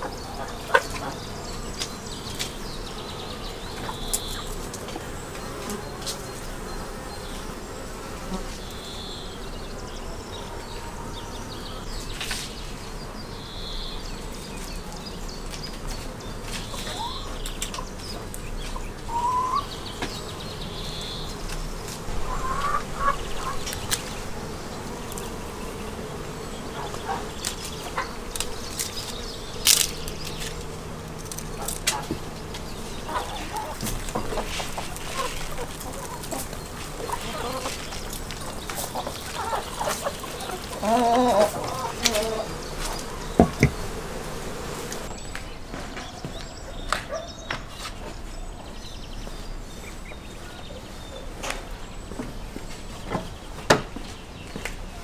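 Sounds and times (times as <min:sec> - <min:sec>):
honeybees buzzing: 0:00.0 - 0:55.0
pruning shears snipping: 0:27.1 - 0:32.7.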